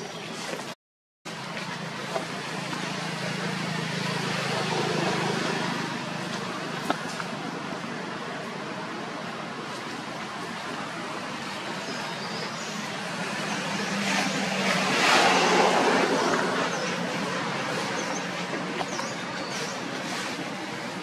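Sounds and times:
traffic background: 0.0 - 21.0
motor vehicle passing by: 1.4 - 7.7, 12.6 - 20.9.

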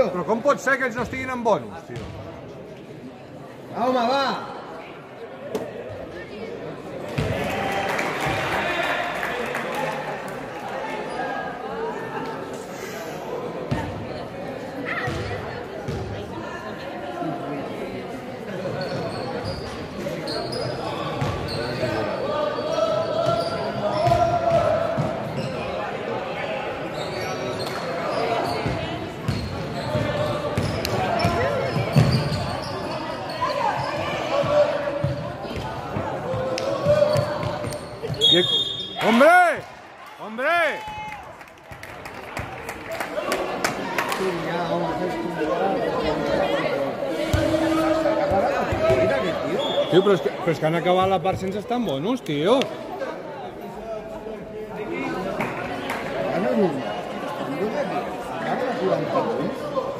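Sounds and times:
voices echoing in sports hall: 0.0 - 59.9.

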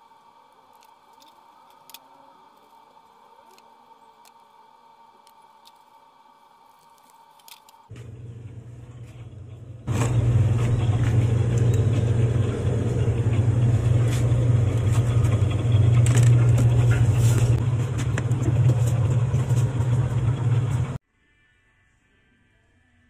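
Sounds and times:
refrigerator electrical hum: 0.0 - 21.0.

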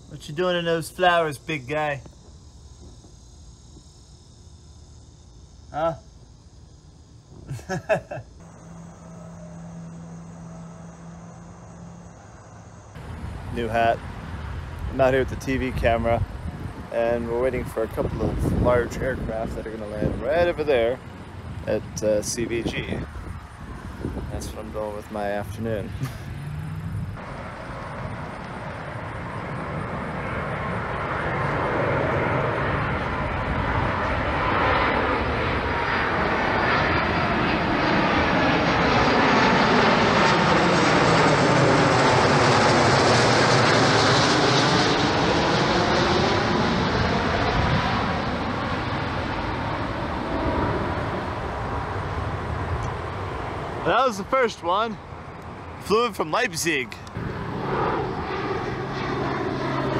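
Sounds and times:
jet passing overhead: 0.0 - 7.4, 8.4 - 59.9.

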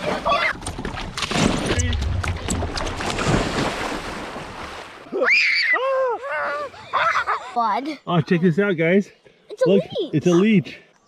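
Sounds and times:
water splashing: 0.0 - 5.7.

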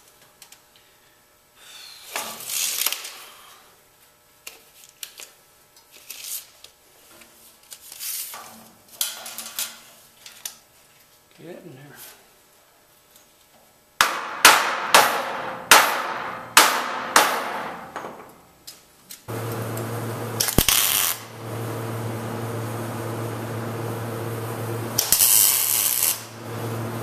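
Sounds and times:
sharp knocks on steel: 14.0 - 18.2
welder humming: 19.3 - 27.0
welding arc crackle: 19.3 - 27.0.

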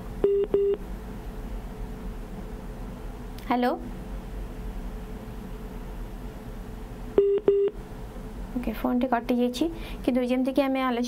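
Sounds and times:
telephone line beeps: 0.2 - 0.8, 7.2 - 7.8.

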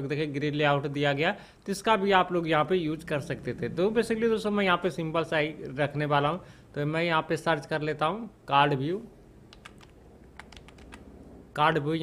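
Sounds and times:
keyboard typing: 9.5 - 11.1.

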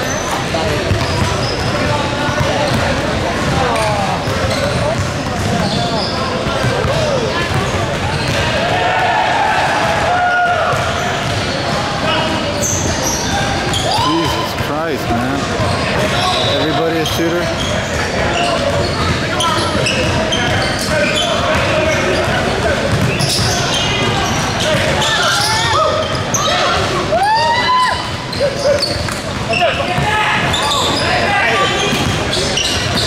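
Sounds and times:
players calling out: 0.1 - 33.0
basketball bouncing on hardwood floor: 5.0 - 5.7, 22.9 - 23.2.

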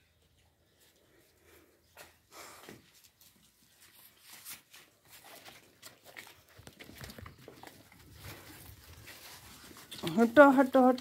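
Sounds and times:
puppies scuffling and snuffling: 0.0 - 11.0.

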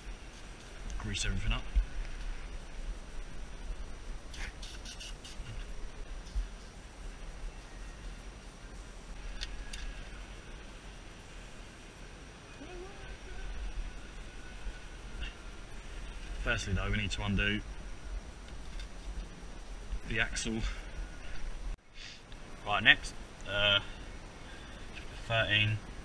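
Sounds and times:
steady low rumble: 0.0 - 4.6, 5.2 - 26.0.

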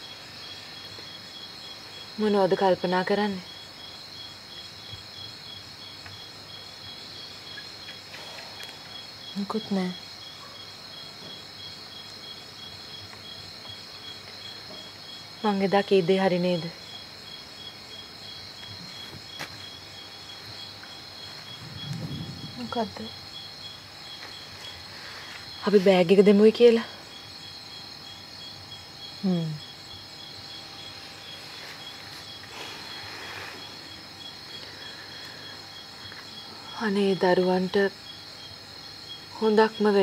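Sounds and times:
crickets chirping: 0.0 - 40.0.

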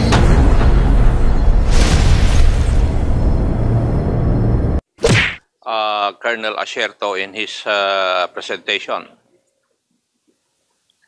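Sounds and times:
low rumble of boom: 0.0 - 4.8.

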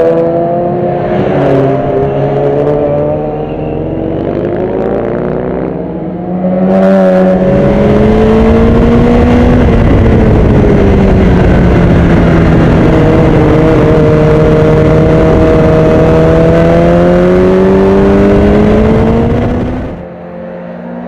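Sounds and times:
motorcycle engine accelerating: 0.0 - 21.0
motorcycle engines revving: 0.0 - 21.0.

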